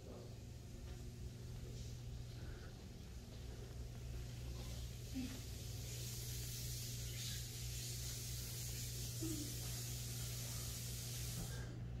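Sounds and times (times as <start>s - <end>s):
steady low hum: 0.0s - 12.0s
faint hiss: 4.4s - 12.0s.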